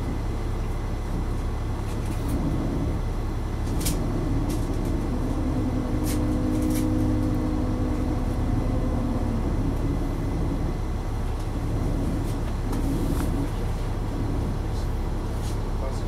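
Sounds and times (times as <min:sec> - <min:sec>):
bus diesel engine humming: 0:00.0 - 0:16.0.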